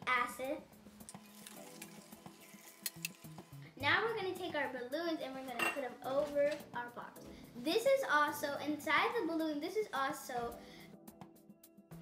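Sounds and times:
soft background music: 0:00.0 - 0:12.0
liquid pouring: 0:01.0 - 0:03.6.

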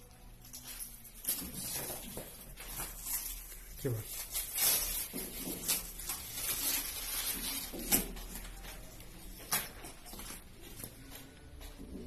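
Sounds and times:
foam sheet rustling and crackling: 0:01.6 - 0:08.6.

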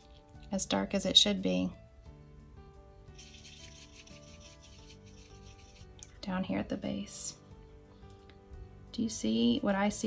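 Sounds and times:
paintbrush scrubbing in paint pan: 0:03.2 - 0:06.0.

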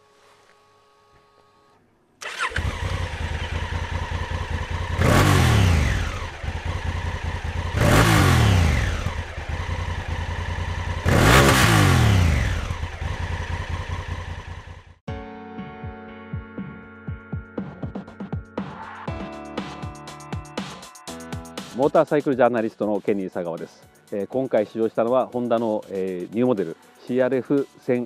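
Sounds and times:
motorcycle engine starting: 0:00.9 - 0:15.0
motorcycle engine revving: 0:01.0 - 0:15.0.

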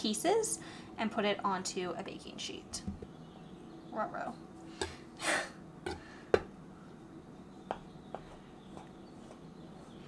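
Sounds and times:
knife tapping through dough: 0:05.9 - 0:06.5, 0:07.6 - 0:09.5.

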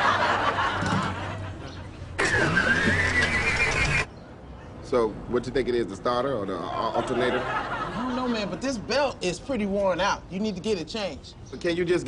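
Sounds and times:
car engine cranking: 0:02.2 - 0:04.1.

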